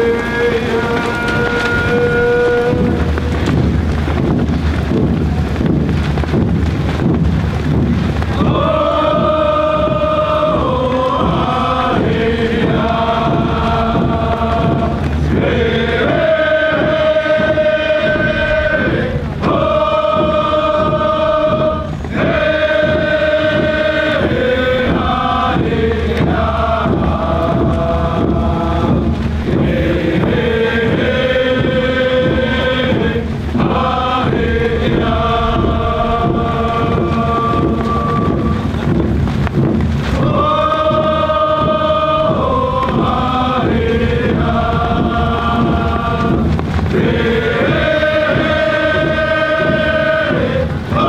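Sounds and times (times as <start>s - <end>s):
group chanting in held notes: 0.0s - 4.9s, 8.3s - 39.0s, 39.6s - 51.0s
steady low rumble: 0.0s - 51.0s.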